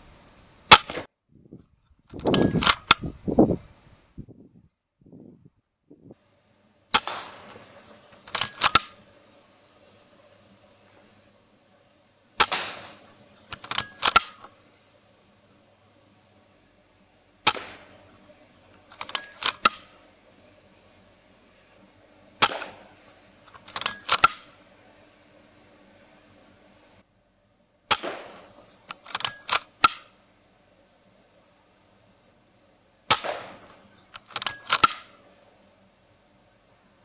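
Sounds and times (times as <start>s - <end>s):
air rifle shots: 0.7s - 1.1s, 6.9s - 7.6s, 8.3s - 9.1s, 12.4s - 14.5s, 17.4s - 18.1s, 18.9s - 20.0s, 22.4s - 23.0s, 23.6s - 24.6s, 27.9s - 30.2s, 33.1s - 35.2s
rifle mechanism clicks: 7.0s - 9.0s, 12.4s - 14.6s, 18.7s - 20.0s, 22.4s - 22.9s, 23.5s - 24.6s, 27.9s - 30.2s, 33.1s - 35.2s.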